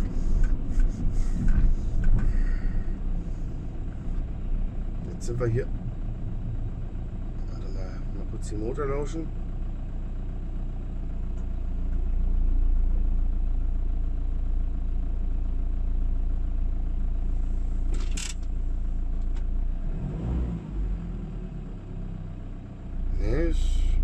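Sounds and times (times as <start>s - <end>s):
van engine and road rumble: 0.0s - 24.0s.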